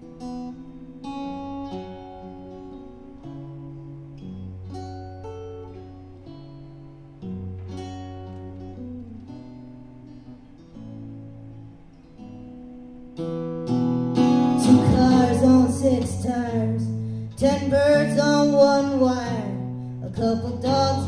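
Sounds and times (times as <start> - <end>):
acoustic guitar plucking: 0.0 - 21.0
person singing: 14.4 - 21.0.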